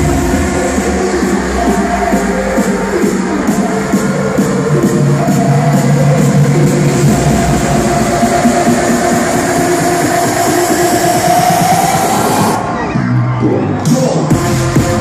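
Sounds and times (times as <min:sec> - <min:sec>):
loud trance music: 0:00.0 - 0:15.0.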